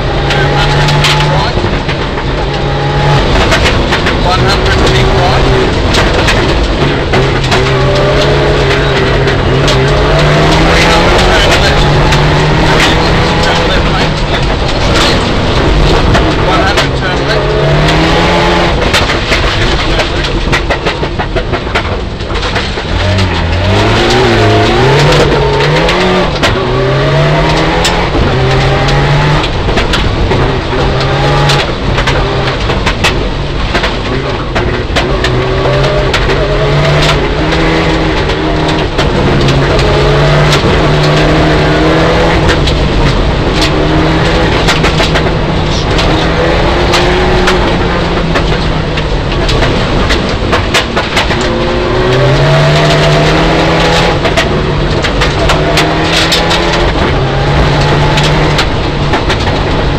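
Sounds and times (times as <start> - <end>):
car engine revving: 0.0 - 59.9
gravel hitting car: 0.0 - 59.9.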